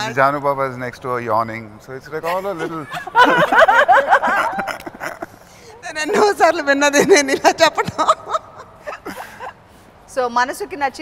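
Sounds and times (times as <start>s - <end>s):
person laughing: 2.3s - 5.4s, 8.0s - 9.5s.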